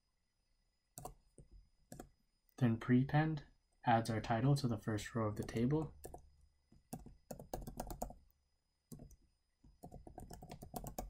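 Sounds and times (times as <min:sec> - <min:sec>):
keyboard typing: 0:00.9 - 0:02.2, 0:05.3 - 0:08.3, 0:08.9 - 0:11.0.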